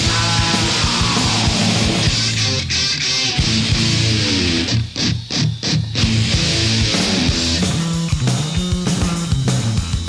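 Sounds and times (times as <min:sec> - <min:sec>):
bass guitar: 0:00.0 - 0:10.0
distorted electric guitars: 0:00.0 - 0:10.0
garage rock band playing: 0:00.0 - 0:10.0.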